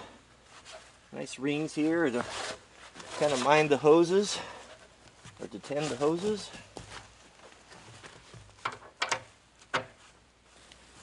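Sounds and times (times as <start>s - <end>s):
metal fittings clicking and knocking: 8.6s - 9.9s.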